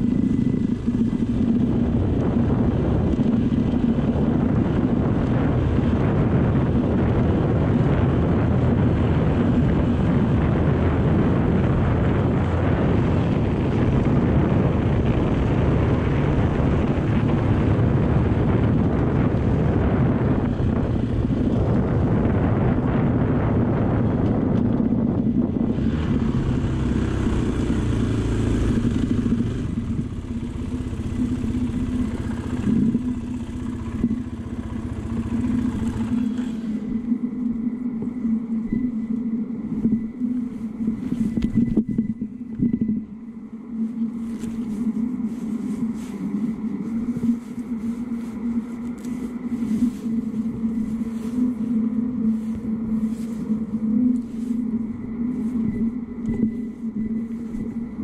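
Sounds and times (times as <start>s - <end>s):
motorcycle engine running: 0.0s - 39.1s
road rumble: 0.0s - 58.0s
wind rush: 0.0s - 58.0s.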